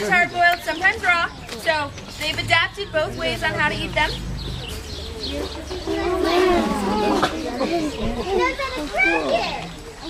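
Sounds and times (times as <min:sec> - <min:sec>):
voices chattering: 0:00.0 - 0:10.0.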